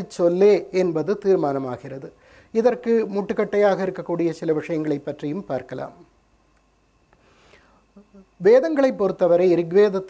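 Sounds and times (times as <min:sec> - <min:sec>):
soft breath: 0:02.2 - 0:02.6, 0:07.1 - 0:08.2.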